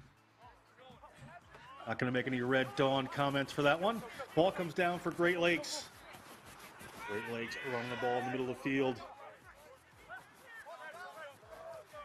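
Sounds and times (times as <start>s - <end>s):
distant players shouting: 6.9s - 12.0s.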